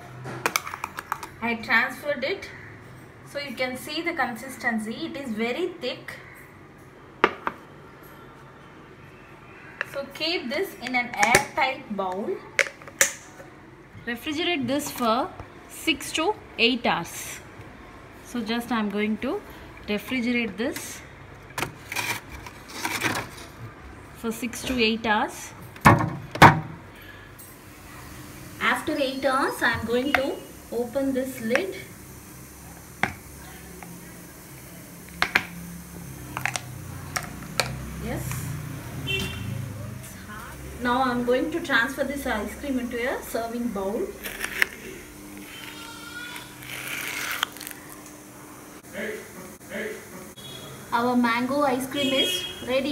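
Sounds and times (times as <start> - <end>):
spoon scraping ice cream: 44.2 - 48.0.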